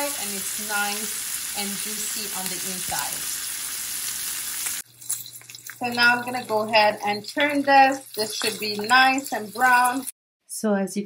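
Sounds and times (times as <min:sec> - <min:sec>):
meat sizzling in a skillet: 0:00.0 - 0:10.1.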